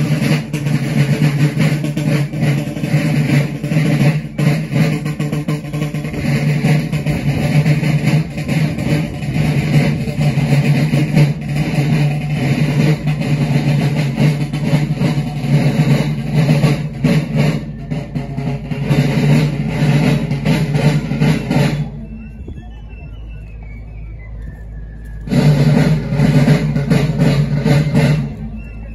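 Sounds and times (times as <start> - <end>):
marching drums playing: 0.0 - 24.0, 25.2 - 28.9.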